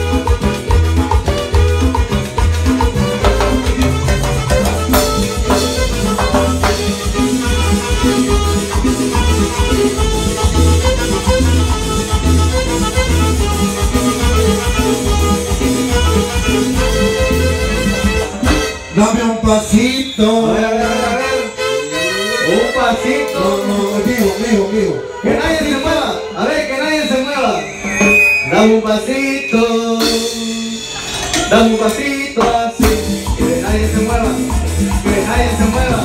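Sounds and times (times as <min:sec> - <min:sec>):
band playing latin dance music: 0:00.0 - 0:36.0.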